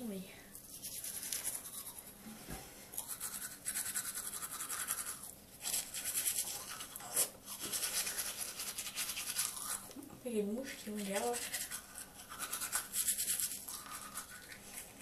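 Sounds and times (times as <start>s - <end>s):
toothbrush scrubbing teeth: 0.5s - 2.2s, 2.9s - 10.0s, 10.6s - 15.0s.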